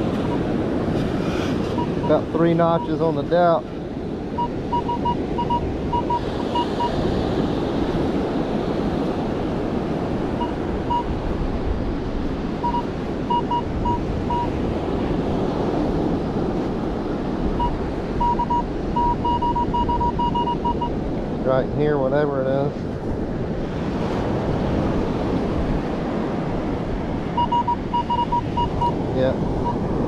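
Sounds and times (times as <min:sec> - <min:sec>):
wind: 0:00.0 - 0:30.0
metal detector beeps: 0:00.2 - 0:00.5, 0:01.7 - 0:03.0, 0:04.4 - 0:07.0, 0:10.4 - 0:11.1, 0:12.6 - 0:14.6, 0:17.6 - 0:21.0, 0:27.4 - 0:29.0.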